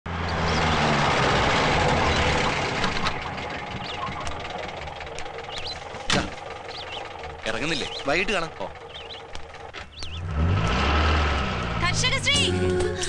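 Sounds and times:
birds chirping faintly: 0.1 - 11.9
car engine driving and idling: 0.1 - 13.0.

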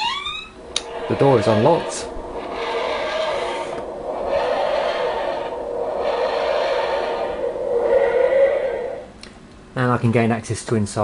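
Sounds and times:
wheezing grinding sound effect: 0.6 - 9.2.

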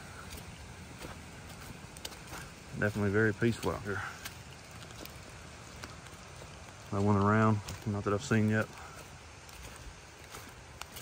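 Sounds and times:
water hissing: 0.0 - 11.0.

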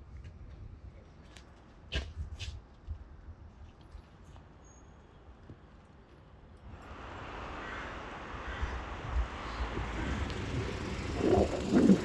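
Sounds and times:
steady low street rumble: 0.0 - 12.0.

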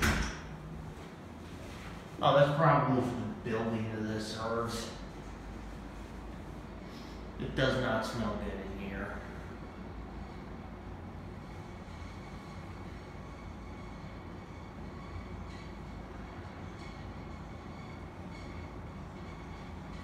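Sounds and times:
elevator low rumble: 0.0 - 20.0.

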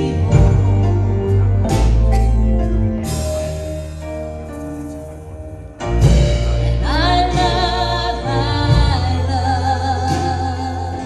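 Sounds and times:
steady bass line: 0.0 - 11.0
worship band playing: 0.0 - 11.0
person singing: 6.5 - 11.0.

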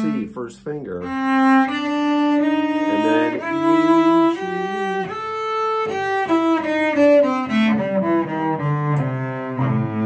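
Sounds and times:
cello playing descending scale: 0.0 - 10.0.

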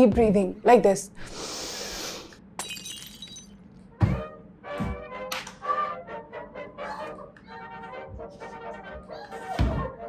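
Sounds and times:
music: 0.0 - 0.8, 3.6 - 10.0
woman breathing deeply: 1.2 - 2.4.

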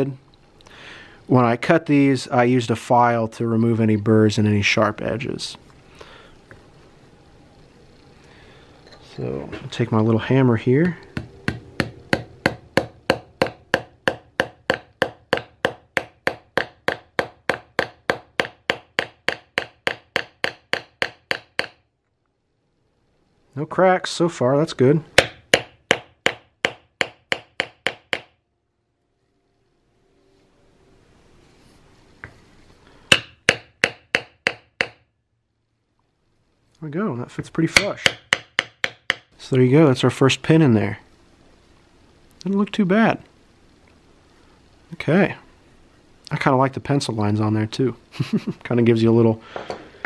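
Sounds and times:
small hammer tapping a pin: 10.8 - 21.8, 25.2 - 28.4, 33.1 - 35.0, 37.8 - 39.3.

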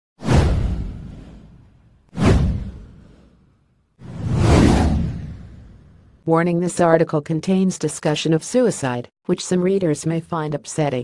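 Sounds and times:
whoosh sound effects: 2.2 - 6.0.

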